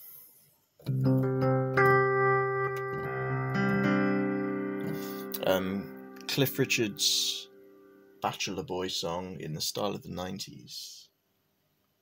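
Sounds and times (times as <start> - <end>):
slow piano chords on keyboard: 0.9 - 8.2.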